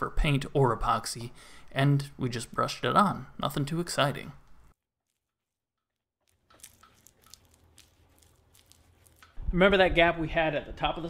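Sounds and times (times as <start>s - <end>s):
brush scratching on tree bark: 6.6s - 9.4s.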